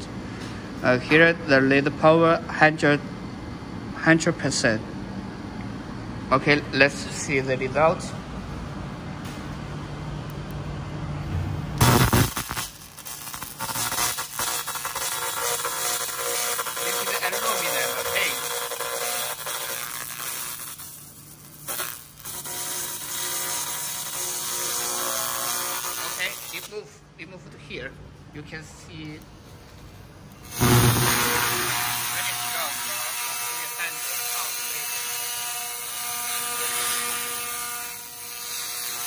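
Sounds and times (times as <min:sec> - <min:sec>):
laser cleaner buzzing hiss: 0:11.8 - 0:26.7, 0:30.4 - 0:39.0.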